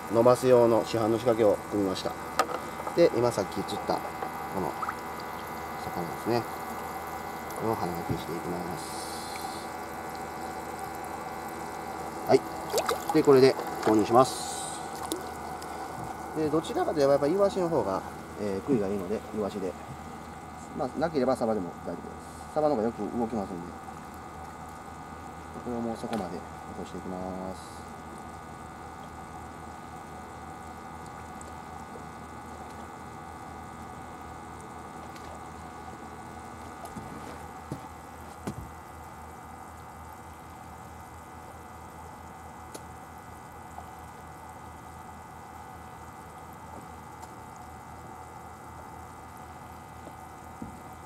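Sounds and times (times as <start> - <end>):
steady hum: 0.0 - 51.0
aerator bubbling water: 0.8 - 20.6, 27.8 - 51.0
faint water wash: 2.6 - 19.4.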